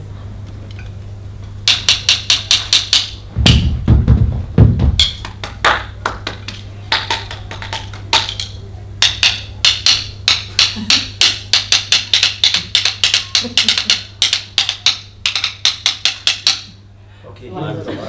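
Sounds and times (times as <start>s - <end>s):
wooden sticks tapping: 1.6s - 3.8s, 4.8s - 16.8s.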